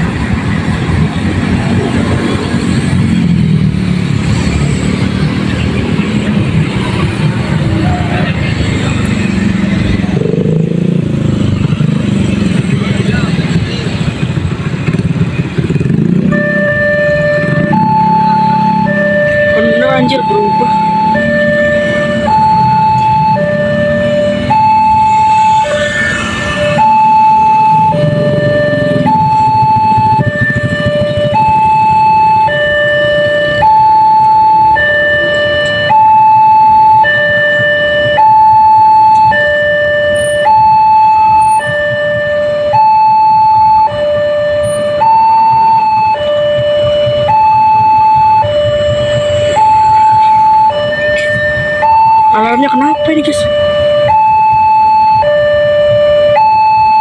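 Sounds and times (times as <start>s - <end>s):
level crossing two-tone alarm: 16.0s - 57.0s.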